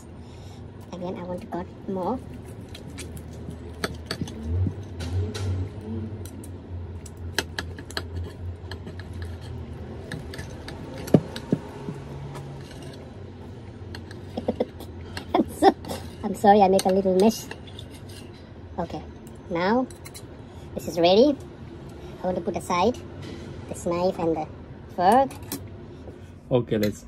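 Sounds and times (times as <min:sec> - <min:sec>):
cutlery scraping a plate: 0:07.3 - 0:13.1, 0:13.9 - 0:18.5, 0:19.9 - 0:20.3.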